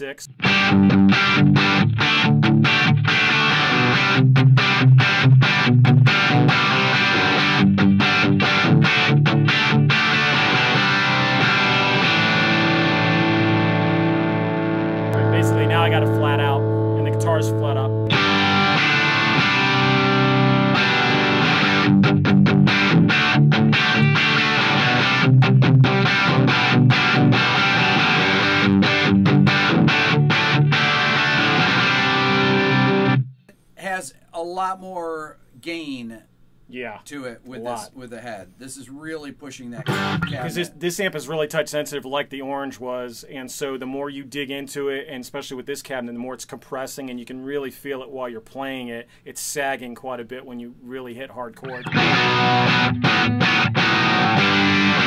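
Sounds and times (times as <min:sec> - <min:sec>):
electric guitar chords and riffs: 0:00.3 - 0:33.4, 0:39.8 - 0:40.8, 0:51.6 - 0:55.0.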